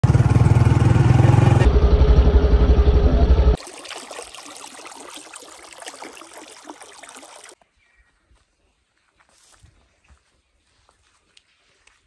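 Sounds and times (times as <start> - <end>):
vehicle engine running: 0.0 - 3.6
faint trickling water: 3.6 - 7.6.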